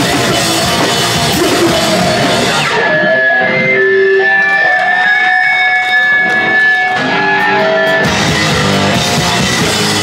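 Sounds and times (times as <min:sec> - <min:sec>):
heavy electric guitars: 0:00.0 - 0:10.0.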